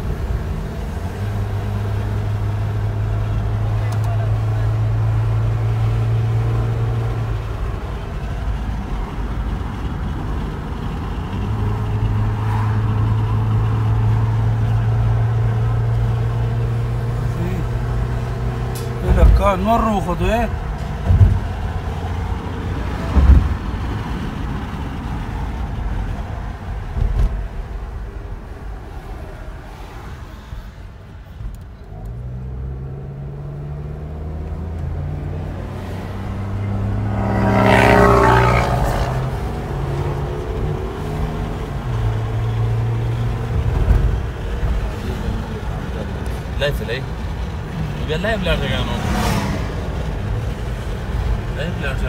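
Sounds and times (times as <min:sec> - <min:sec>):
road and engine rumble in car: 0:00.0 - 0:52.0.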